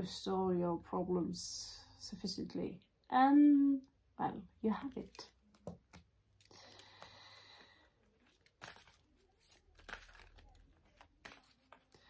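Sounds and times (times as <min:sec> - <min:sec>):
cards being shuffled: 0:04.8 - 0:12.0.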